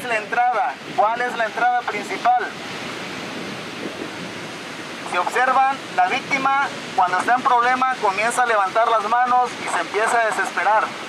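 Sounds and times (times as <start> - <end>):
ocean waves breaking: 0.0 - 11.0.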